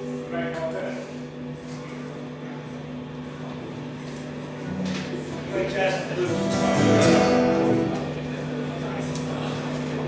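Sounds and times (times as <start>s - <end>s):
amplifier electrical hum: 0.0s - 10.0s
faint hall noise: 0.0s - 10.0s.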